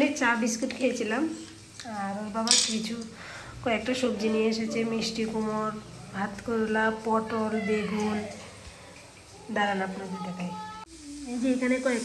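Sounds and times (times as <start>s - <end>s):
woman speaking: 0.0s - 8.4s, 9.4s - 12.0s.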